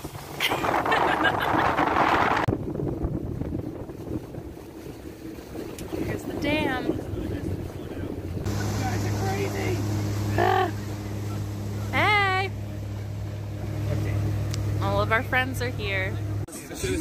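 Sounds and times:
outboard motor humming: 0.0s - 16.5s
wind and water rumble: 0.0s - 17.0s.

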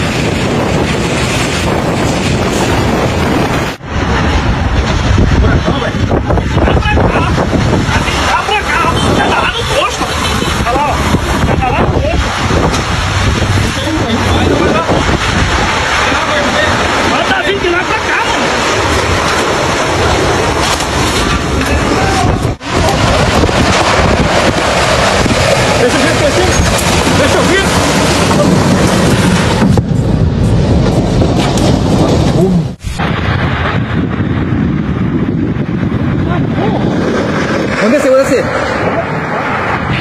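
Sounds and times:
strong wind gusting on microphone: 0.0s - 40.0s.

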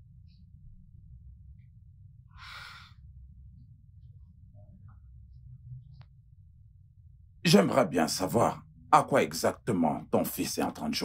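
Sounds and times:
steady low hum: 0.0s - 11.0s
woman sighing: 2.4s - 2.9s.

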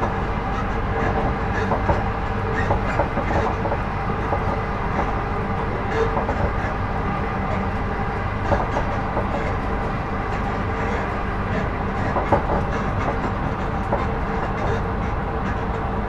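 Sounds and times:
train wheels rumbling on rail: 0.0s - 16.0s.

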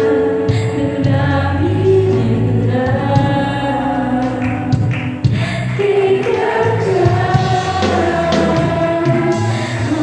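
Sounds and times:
choir singing gospel: 0.0s - 10.0s.

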